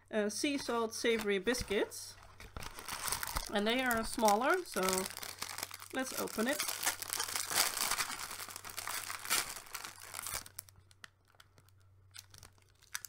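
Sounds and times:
plastic packet crinkling: 2.3 - 13.0.

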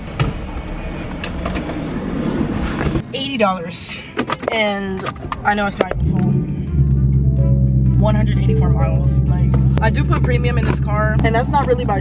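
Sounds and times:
low hum and rush: 5.0 - 12.0.

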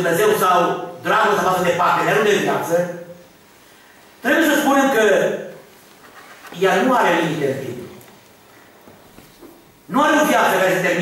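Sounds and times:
man preaching: 0.0 - 3.3, 4.2 - 5.6, 6.5 - 8.0, 9.9 - 11.0.

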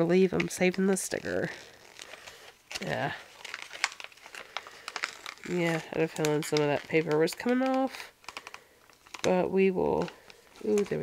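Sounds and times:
packaging crinkling: 0.2 - 11.0
sticker peeling crackles: 0.2 - 11.0.

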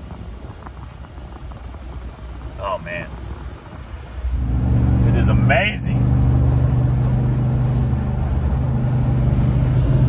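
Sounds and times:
engine and road noise drone: 0.0 - 10.0.

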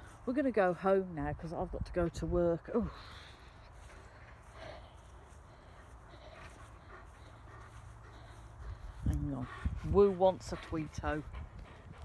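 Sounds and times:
woman's voice: 0.2 - 3.2, 9.0 - 11.4
steady low rumble: 1.3 - 12.0.

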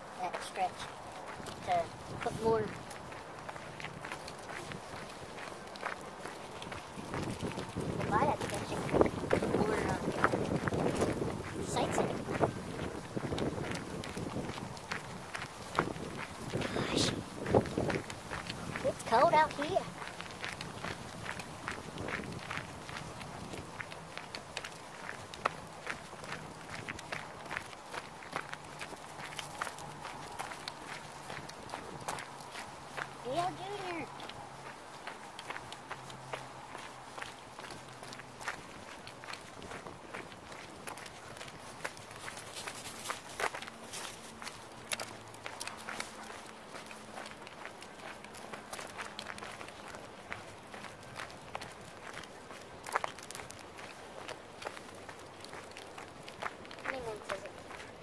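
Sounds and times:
footsteps on gravel and leaves: 0.0 - 58.0.

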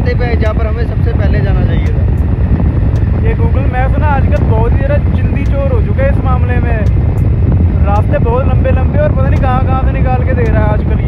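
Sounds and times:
man talking: 0.0 - 2.0, 3.2 - 7.0, 7.8 - 11.0
wind buffeting microphone: 0.0 - 11.0.

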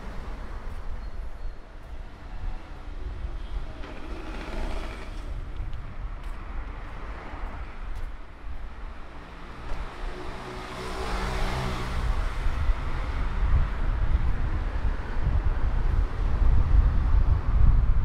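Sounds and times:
car passing by: 2.3 - 5.6, 9.1 - 14.2.

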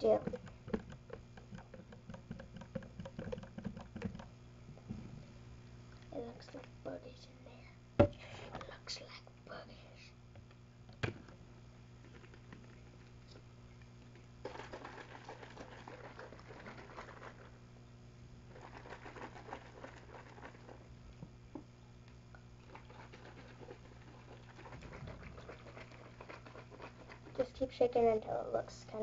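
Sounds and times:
spray bottle shaken: 0.0 - 4.3, 14.4 - 17.5, 18.5 - 20.8, 22.7 - 27.4
low steady hum: 0.0 - 29.0.

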